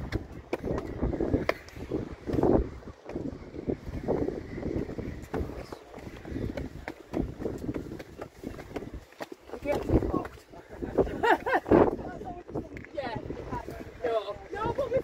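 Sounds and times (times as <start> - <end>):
footsteps on stone steps: 0.0 - 15.0.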